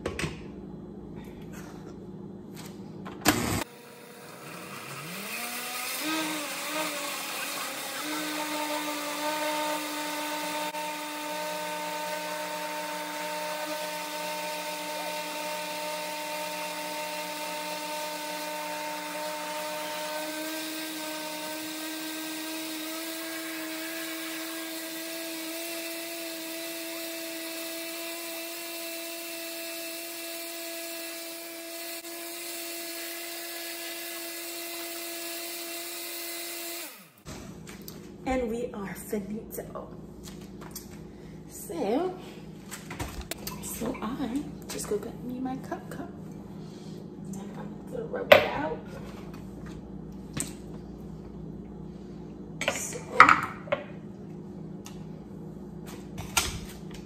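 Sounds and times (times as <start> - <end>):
blender motor whining: 3.2 - 37.3.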